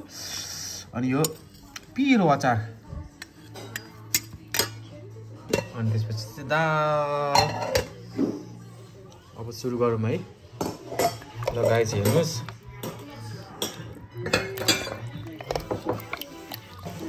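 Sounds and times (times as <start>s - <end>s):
music with singing: 0.0s - 17.0s
metal spoon clinking on bowls: 3.2s - 4.9s, 7.3s - 8.0s, 10.6s - 17.0s.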